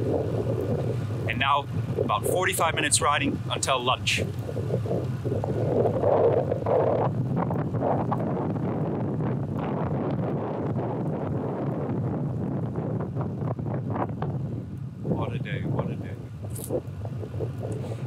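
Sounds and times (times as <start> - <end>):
wind rushing over microphone: 0.0 - 18.0.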